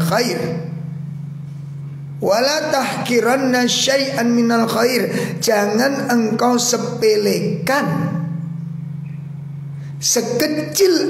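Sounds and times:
person speaking: 0:00.0 - 0:01.0, 0:02.2 - 0:08.6, 0:10.0 - 0:11.0
steady low hum: 0:00.0 - 0:11.0.

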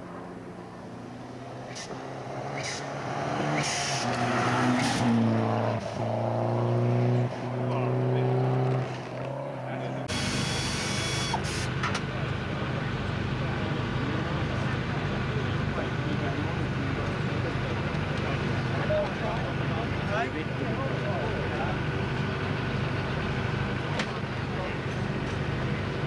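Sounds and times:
rally car accelerating: 0:00.2 - 0:26.0
voices: 0:01.7 - 0:26.0.

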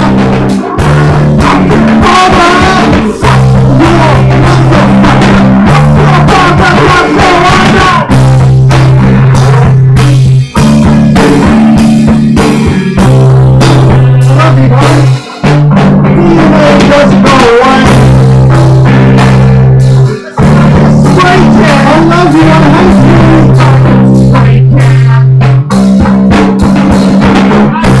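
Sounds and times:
bass guitar long low notes: 0:00.0 - 0:28.0
drum hits: 0:00.0 - 0:28.0.

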